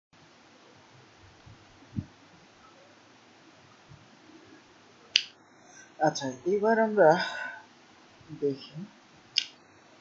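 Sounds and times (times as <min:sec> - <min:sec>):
faint room hiss: 0:00.2 - 0:10.0.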